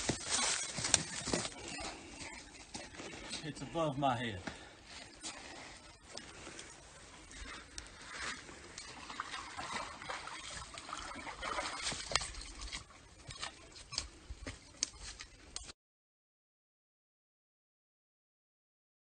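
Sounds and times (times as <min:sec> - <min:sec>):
person wading through water: 0:04.6 - 0:15.4.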